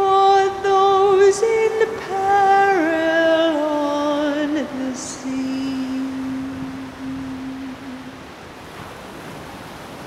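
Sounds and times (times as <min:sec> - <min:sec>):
surf washing up a beach: 0:00.0 - 0:10.0.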